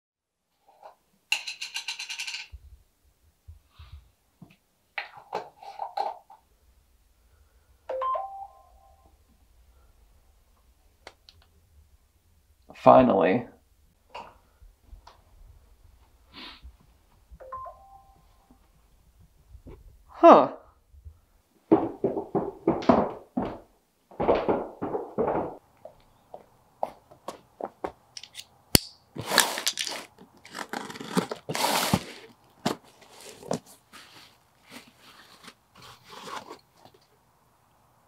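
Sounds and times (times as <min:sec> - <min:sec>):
two-note electronic chime: 0:07.9 - 0:09.1, 0:17.4 - 0:18.5.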